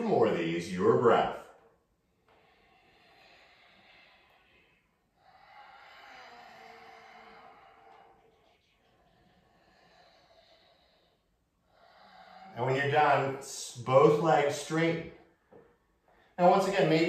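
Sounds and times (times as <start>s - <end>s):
man breathing slowly: 1.6s - 13.4s.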